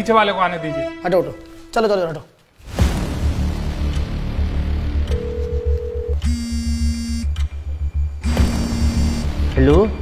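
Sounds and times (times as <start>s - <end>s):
background music with low beat: 2.6s - 10.0s
phone ringback tone: 5.2s - 7.4s, 8.2s - 9.3s.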